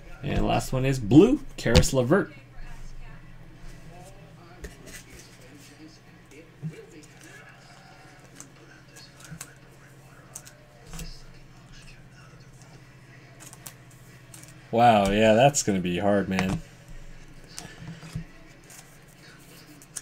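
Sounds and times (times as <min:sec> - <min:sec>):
low steady hum: 0:00.0 - 0:20.0
faint voice: 0:02.6 - 0:13.4.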